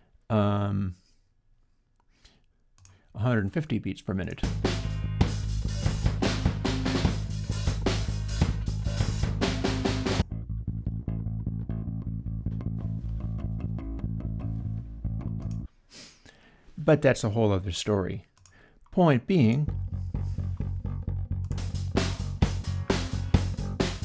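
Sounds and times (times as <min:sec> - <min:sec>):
hard-hitting drums: 0:04.4 - 0:10.2, 0:21.5 - 0:24.0
bass guitar line: 0:04.4 - 0:15.7, 0:19.3 - 0:24.0.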